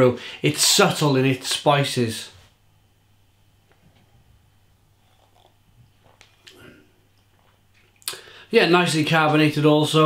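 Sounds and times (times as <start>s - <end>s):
low steady hum: 0.0s - 10.0s
man sipping and swallowing: 4.9s - 8.3s
breath out: 8.1s - 8.5s.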